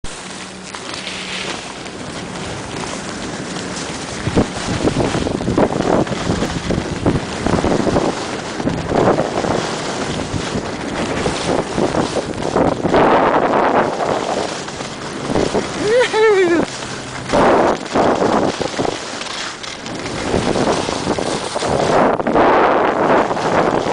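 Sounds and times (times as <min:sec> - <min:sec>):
skis scraping on snow: 0:00.0 - 0:23.9
wind rushing over microphone: 0:00.0 - 0:23.9.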